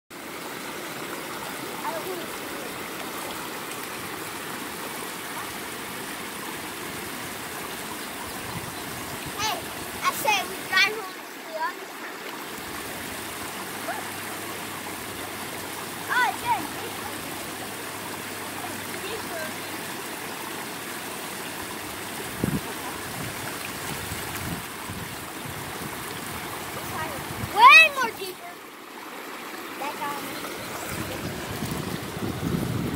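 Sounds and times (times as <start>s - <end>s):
creek water rushing over weir: 0.1s - 32.9s.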